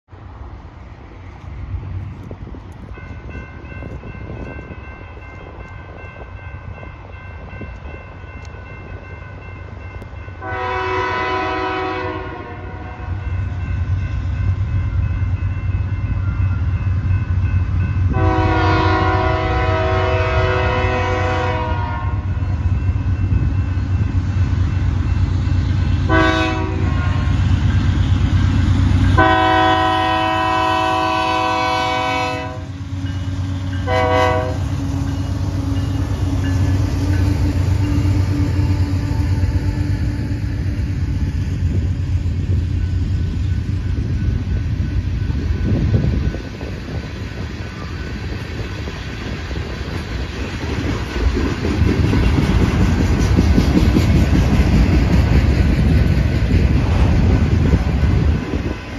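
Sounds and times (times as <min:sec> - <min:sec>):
diesel locomotive rumble: 0:00.1 - 0:58.9
train air horn blasts: 0:10.4 - 0:13.3, 0:18.1 - 0:22.5, 0:26.0 - 0:27.5, 0:29.1 - 0:32.8, 0:33.7 - 0:34.8.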